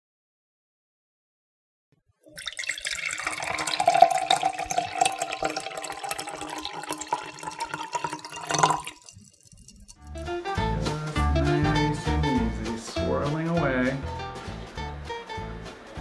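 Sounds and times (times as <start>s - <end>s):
wine pouring into a glass: 2.3s - 10.1s.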